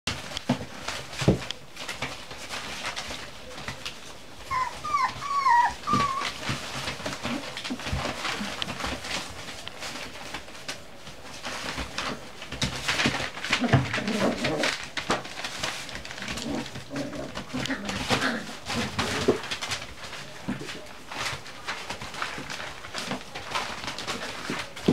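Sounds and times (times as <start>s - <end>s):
newspaper rustling: 0.1s - 24.9s
puppies play-growling: 0.2s - 24.9s
puppies whimpering: 4.4s - 7.6s.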